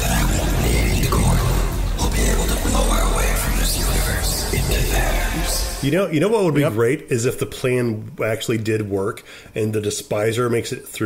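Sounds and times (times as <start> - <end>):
low rumble of sound effects: 0.0 - 5.9
voices: 0.0 - 7.4.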